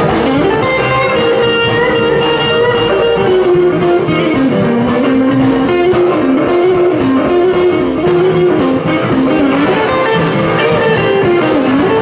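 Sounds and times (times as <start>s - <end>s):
electric guitar lead: 0.0s - 12.0s
steady drum beat: 0.0s - 12.0s
upright bass: 0.0s - 12.0s.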